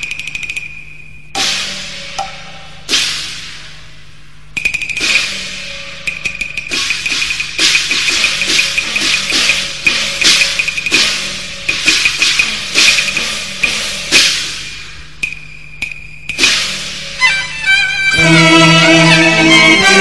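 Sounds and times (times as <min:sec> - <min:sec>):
struck metal percussion: 0:01.3 - 0:04.0, 0:04.6 - 0:17.3
drum strokes: 0:01.4 - 0:03.8, 0:04.6 - 0:17.5
cymbal crash: 0:01.4 - 0:04.0, 0:05.0 - 0:15.2, 0:16.4 - 0:17.3.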